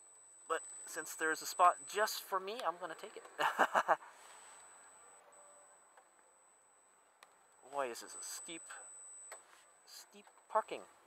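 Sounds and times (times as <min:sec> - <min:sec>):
faint high-pitched whine: 0:00.0 - 0:11.0
person speaking: 0:00.9 - 0:03.5.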